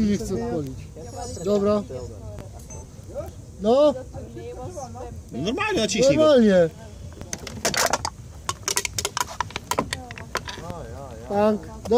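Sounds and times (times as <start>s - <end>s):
drinks can crumpling: 7.3s - 10.7s.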